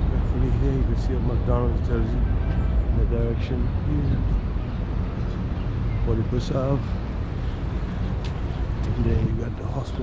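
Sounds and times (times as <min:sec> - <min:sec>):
street traffic: 0:00.0 - 0:10.0.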